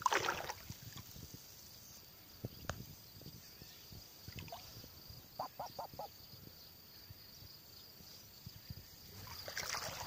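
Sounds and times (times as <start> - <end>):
water lapping: 0.0 - 1.0, 9.2 - 10.0
duck quacking: 5.4 - 6.1.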